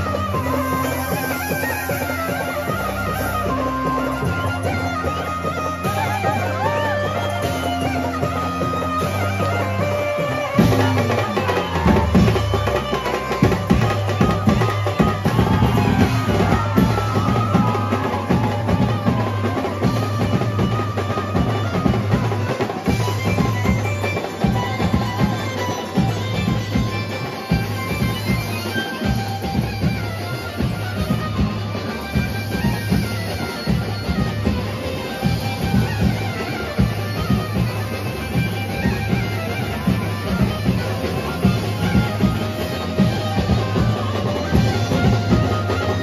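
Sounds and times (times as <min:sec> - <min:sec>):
drums and cymbals: 0:00.0 - 0:46.0.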